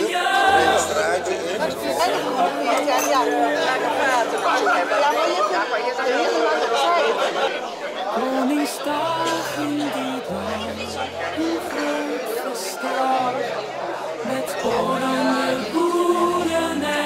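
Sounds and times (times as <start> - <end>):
faint held music notes: 0.0 - 5.6, 8.2 - 17.0
crowd chatter: 0.0 - 17.0.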